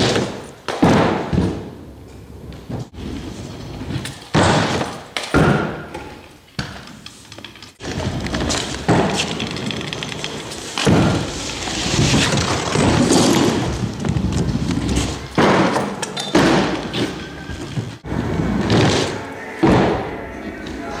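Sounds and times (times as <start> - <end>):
scooter thudding on wood: 3.9 - 6.9, 7.8 - 9.6, 10.8 - 17.2
scooter wheels rolling on wood: 5.9 - 19.2
background voices: 18.1 - 21.0.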